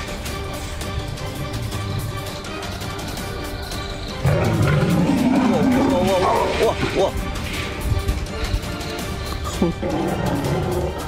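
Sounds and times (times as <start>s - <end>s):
background music: 0.0s - 11.0s
big cat roaring: 4.2s - 6.8s, 9.8s - 11.0s.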